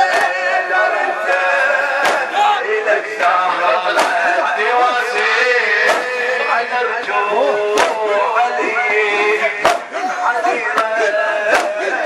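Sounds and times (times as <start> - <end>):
men striking chests: 0.0 - 6.5, 7.6 - 12.0
man chanting: 0.0 - 12.0.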